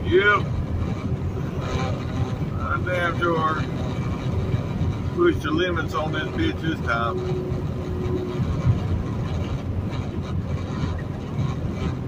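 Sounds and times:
truck engine and road noise: 0.0s - 12.0s.

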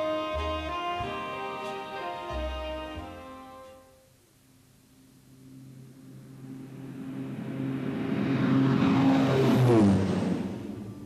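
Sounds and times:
vehicle engine passing by: 5.8s - 11.0s.

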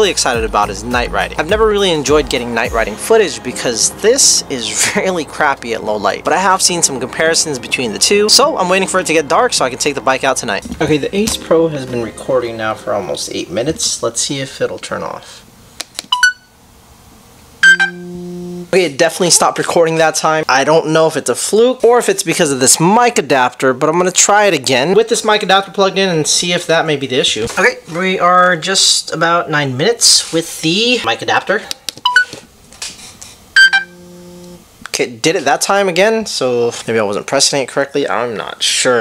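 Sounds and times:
electronic chimes: 17.6s - 18.8s, 33.6s - 34.6s
two-note chirp: 17.6s - 18.8s, 33.6s - 34.6s
steady held tone: 17.6s - 19.6s, 33.6s - 34.7s.

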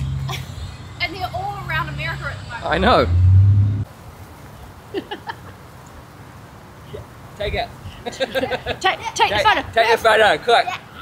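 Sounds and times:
quiet outdoor background: 0.0s - 11.0s
loud low rumble: 2.0s - 3.9s.

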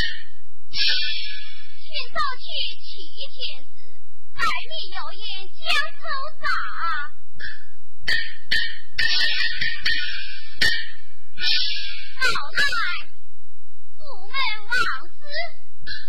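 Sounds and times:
sharp percussion strikes: 0.0s - 1.9s, 7.4s - 13.1s
high-pitched instrumental accompaniment: 0.0s - 2.4s, 6.4s - 13.3s.

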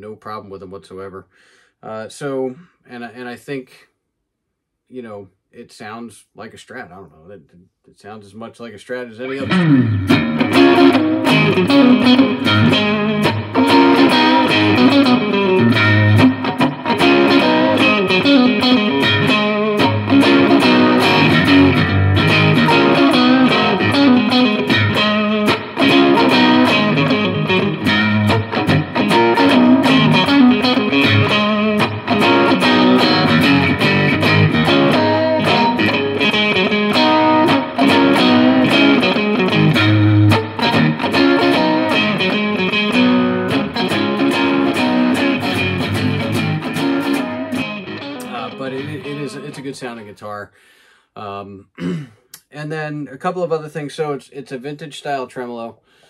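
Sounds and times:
electric guitar riffs and chords: 9.2s - 50.0s.

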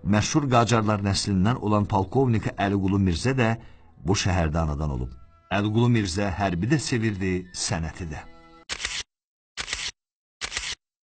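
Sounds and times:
camera shutter clicks: 8.7s - 10.8s.

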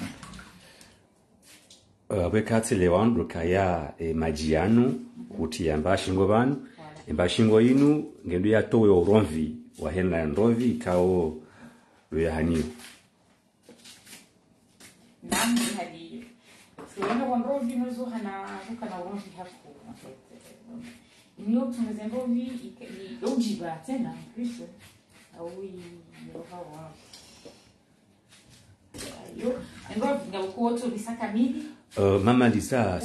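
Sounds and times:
water splashing in a plastic bowl: 0.0s - 0.9s
woman's voice: 15.2s - 27.0s, 29.0s - 31.8s
person speaking: 17.0s - 27.1s, 29.0s - 33.0s.

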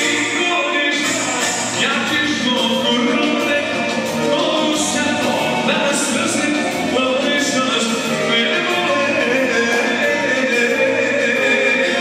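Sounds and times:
accordion: 0.0s - 12.0s
live band playing dance music: 0.0s - 12.0s
person singing: 0.0s - 12.0s.

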